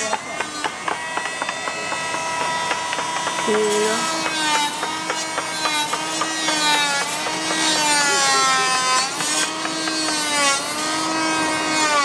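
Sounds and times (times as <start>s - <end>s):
sharp wooden clicks and knocks: 0.0s - 11.0s.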